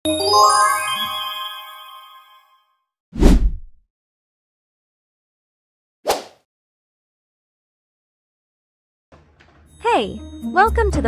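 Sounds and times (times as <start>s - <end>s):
chiming jingle: 0.0s - 2.8s
whoosh with deep boom: 3.2s - 3.8s.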